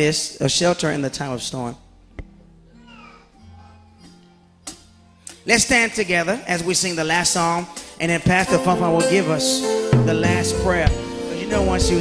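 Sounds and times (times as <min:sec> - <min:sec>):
low keyboard chord: 0:07.8 - 0:12.0.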